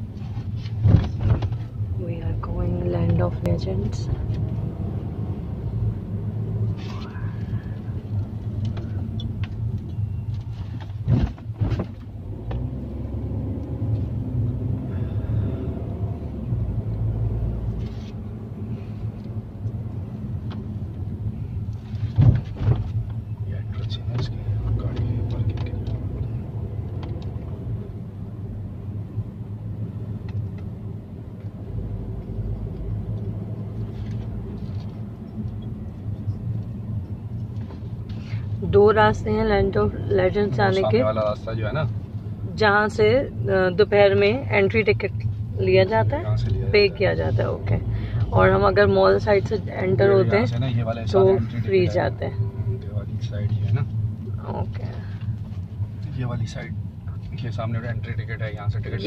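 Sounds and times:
car engine and road hum: 0.0s - 59.0s.

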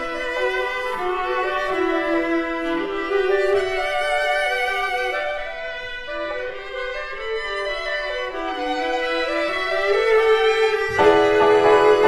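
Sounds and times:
bowed strings with vibrato: 10.0s - 12.0s.

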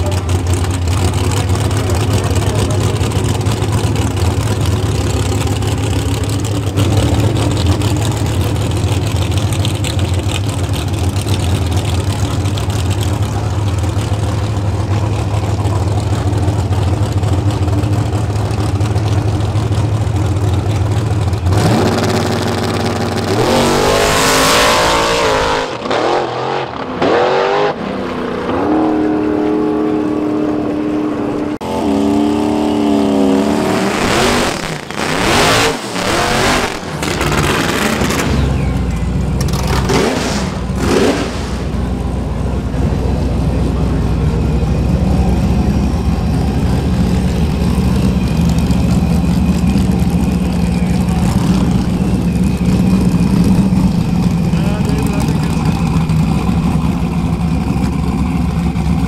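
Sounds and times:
car engine idling loudly: 0.0s - 25.9s, 29.7s - 59.0s
drag racing engines at full throttle: 0.0s - 59.0s
car revving through burnout: 21.4s - 38.8s, 39.4s - 42.0s.

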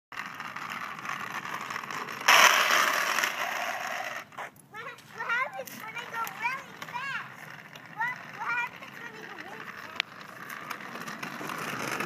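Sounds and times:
plastic wheels rolling on asphalt: 0.1s - 12.0s
trike scraping skid: 0.2s - 12.0s.

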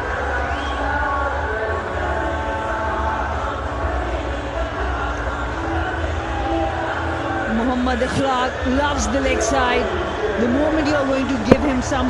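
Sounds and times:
stadium crowd rumble: 0.0s - 12.0s.

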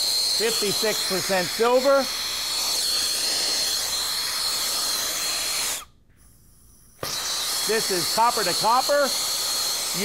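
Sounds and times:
brazing torch flame hissing: 0.0s - 5.9s, 6.6s - 10.0s.

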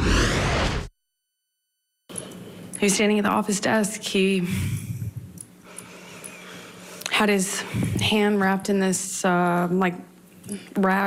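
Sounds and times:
deep low rumble: 0.0s - 0.9s
whoosh: 0.0s - 0.9s.

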